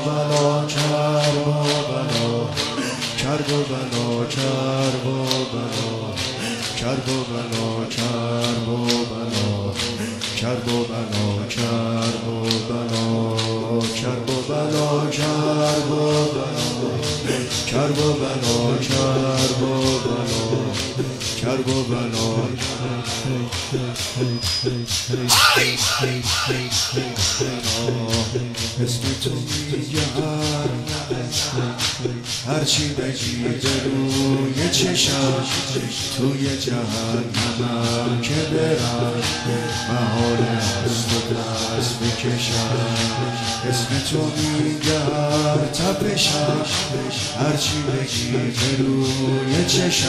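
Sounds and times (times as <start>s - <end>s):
person chanting: 0.0s - 50.0s
chest beating: 25.2s - 27.9s.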